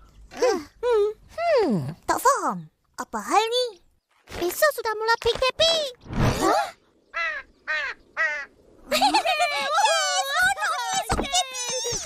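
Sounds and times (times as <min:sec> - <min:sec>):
crow cawing: 0:07.1 - 0:08.6.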